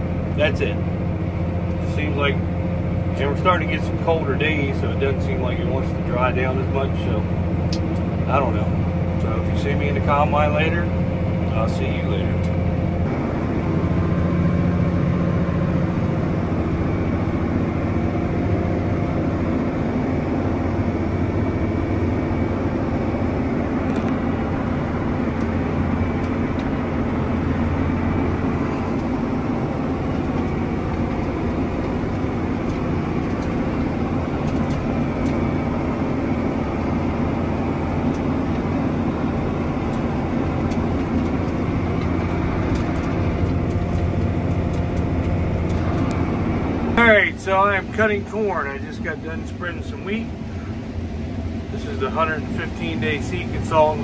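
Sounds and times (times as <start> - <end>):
tractor diesel engine drone: 0.0 - 54.0.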